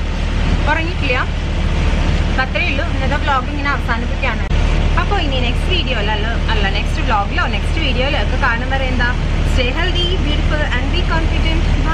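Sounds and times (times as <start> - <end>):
bus cabin hum: 0.0 - 11.9
woman talking: 0.6 - 1.4, 2.4 - 11.9.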